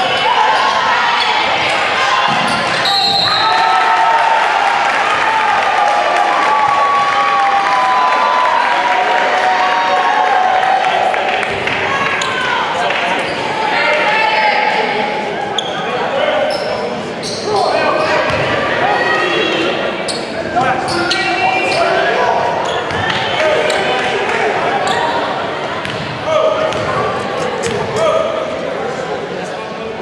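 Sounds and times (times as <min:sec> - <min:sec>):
people talking echoing in gym: 0:00.0 - 0:30.0.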